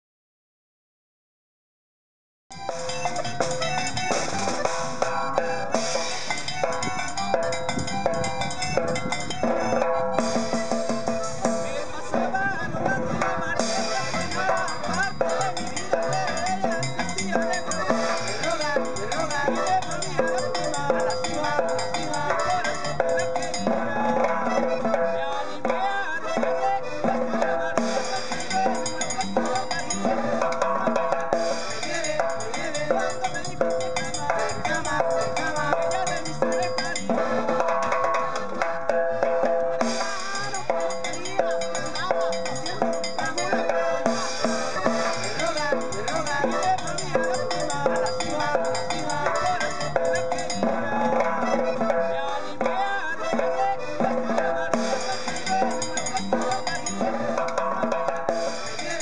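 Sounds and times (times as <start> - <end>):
button accordion: 2.5 - 59.0
upbeat band music: 2.5 - 59.0
upright bass: 2.5 - 59.0
acoustic guitar: 2.6 - 59.0
snare drum and cymbal: 2.8 - 9.0, 13.6 - 20.4, 39.4 - 46.8.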